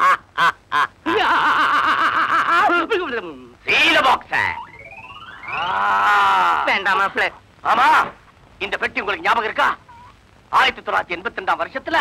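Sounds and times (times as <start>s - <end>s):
men laughing loudly: 0.0s - 3.1s.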